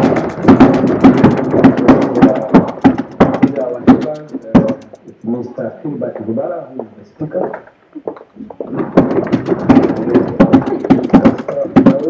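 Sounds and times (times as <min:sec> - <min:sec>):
audience clapping and knocking: 0:00.0 - 0:05.2, 0:08.6 - 0:12.0.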